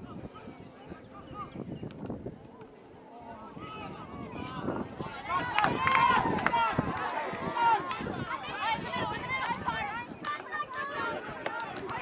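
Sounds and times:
people shouting: 0:05.0 - 0:12.0.

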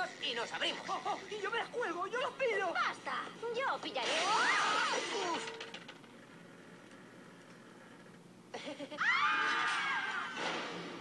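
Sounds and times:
people screaming in panic: 0:09.0 - 0:10.4.

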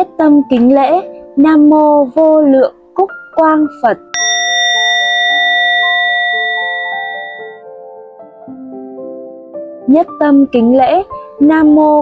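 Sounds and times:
soft background music: 0:00.0 - 0:12.0
bowl bell ringing: 0:04.2 - 0:07.6.

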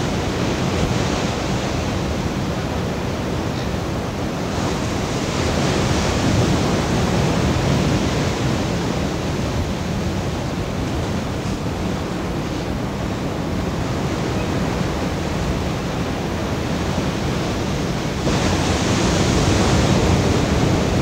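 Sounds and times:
sea surf: 0:00.0 - 0:21.0.

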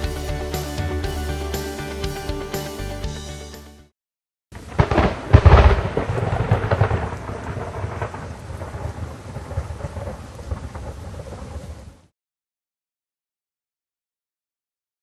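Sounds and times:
crackling thunderclap: 0:04.5 - 0:12.1
rain: 0:04.5 - 0:12.1
thunder rumble: 0:04.6 - 0:12.1.

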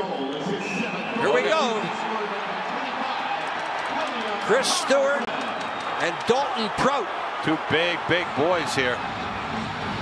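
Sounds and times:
arena crowd din: 0:00.0 - 0:10.0.

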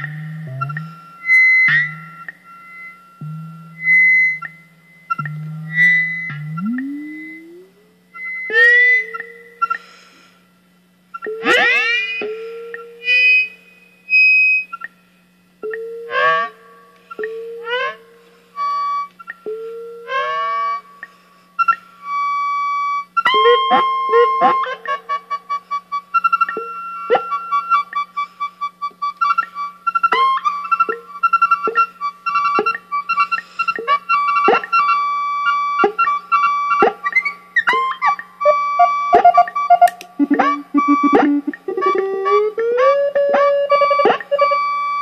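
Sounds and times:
short pulsing synth blips: 0:00.0 - 0:02.4, 0:03.2 - 0:08.0, 0:40.0 - 0:42.5
synthesizer tones sweeping up: 0:00.0 - 0:08.0, 0:40.2 - 0:42.5
low steady hum: 0:00.0 - 0:34.7, 0:37.1 - 0:45.0.

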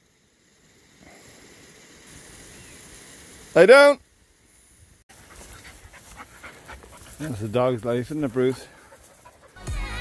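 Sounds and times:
dry bracken crackling and rustling: 0:05.1 - 0:09.6
dog panting: 0:05.1 - 0:10.0.

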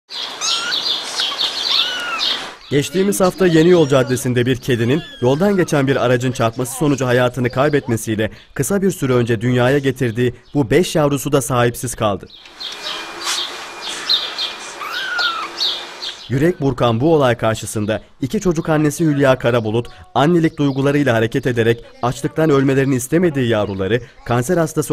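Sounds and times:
kittens mewing: 0:00.1 - 0:06.3, 0:14.0 - 0:16.2
small birds chirping: 0:00.1 - 0:16.6, 0:17.6 - 0:24.5.

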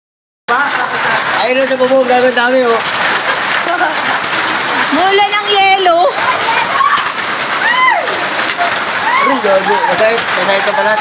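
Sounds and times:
hail and heavy rain: 0:00.5 - 0:11.0.

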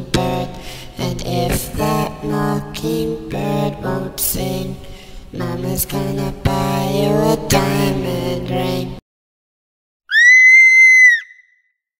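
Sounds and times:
loud high-pitched scream: 0:10.1 - 0:11.6.

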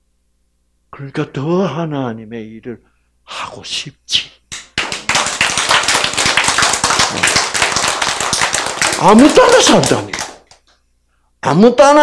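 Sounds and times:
audience applauding: 0:04.5 - 0:10.6.

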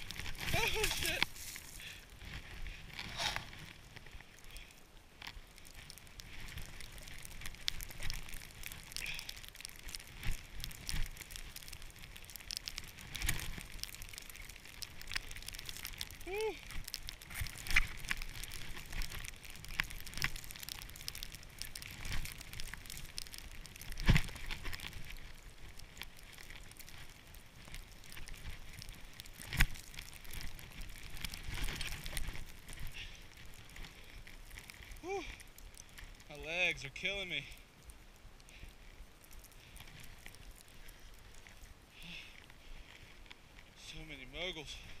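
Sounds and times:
skis sliding through powder snow: 0:00.0 - 0:35.0.

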